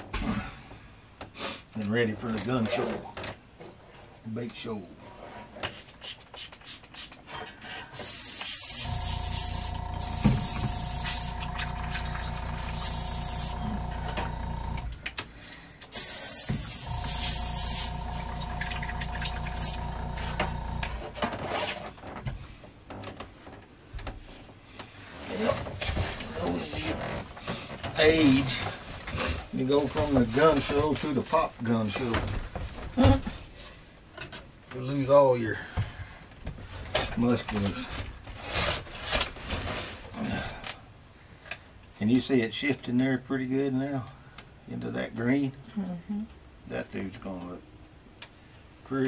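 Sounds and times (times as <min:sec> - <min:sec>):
airbrush spraying air hiss: 0:08.0 - 0:11.6, 0:12.4 - 0:13.9, 0:15.9 - 0:18.5, 0:19.4 - 0:19.9
air compressor running: 0:08.0 - 0:15.0, 0:15.9 - 0:21.2.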